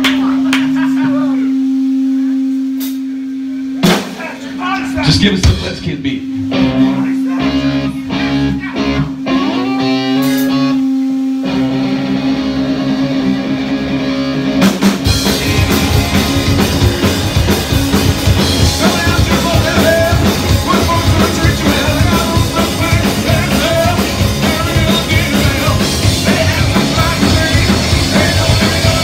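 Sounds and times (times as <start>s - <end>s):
bass guitar notes: 0.0s - 29.0s
electric guitar: 0.0s - 29.0s
punk rock band playing: 3.7s - 29.0s
steady held tone: 4.6s - 29.0s.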